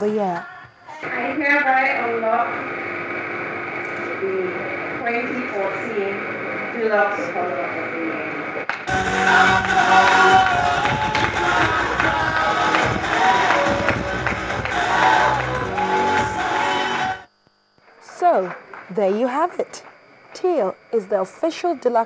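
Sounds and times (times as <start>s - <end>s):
music: 8.9s - 17.3s.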